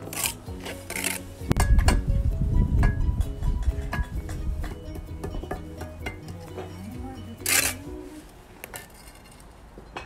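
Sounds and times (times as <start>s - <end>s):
trowel scraping mortar on brick: 0.0s - 1.4s, 7.4s - 8.1s.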